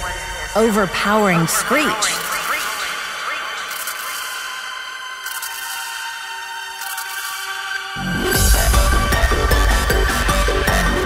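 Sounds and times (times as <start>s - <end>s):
echoing pitched vocal sample: 0.0s - 5.0s.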